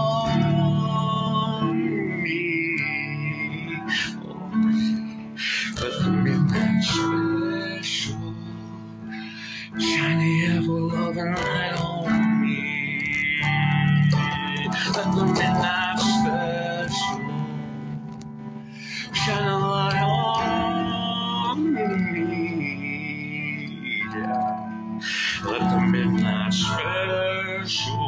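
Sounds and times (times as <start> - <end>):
guitar accompaniment: 0.0 - 28.0
man singing with vibrato: 0.0 - 28.0.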